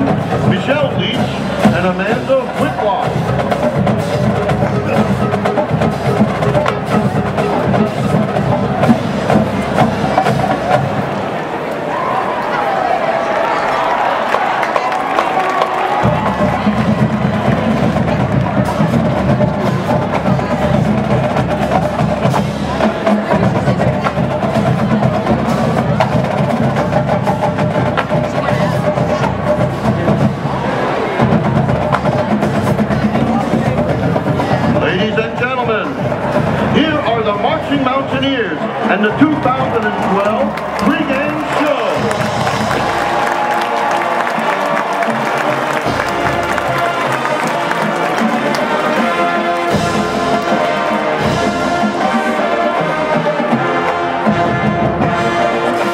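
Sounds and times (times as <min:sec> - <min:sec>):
marching drumline cadence: 0:00.0 - 0:55.9
announcer speaking: 0:00.1 - 0:03.6, 0:34.6 - 0:42.2.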